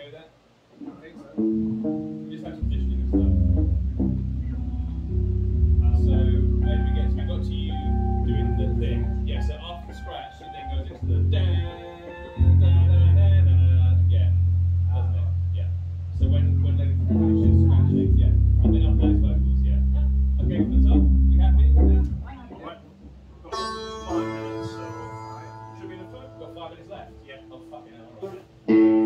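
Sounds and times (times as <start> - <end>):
electric guitar notes: 1.3 - 29.0
low electric bass notes: 1.4 - 27.9.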